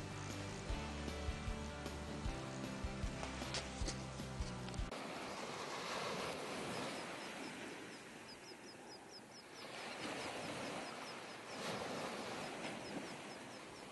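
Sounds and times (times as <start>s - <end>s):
small waves washing onto beach: 3.0s - 13.9s.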